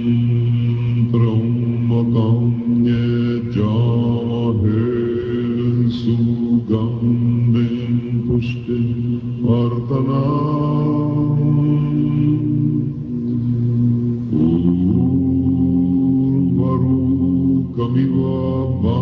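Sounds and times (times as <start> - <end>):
men chanting prayers: 0.0 - 19.0.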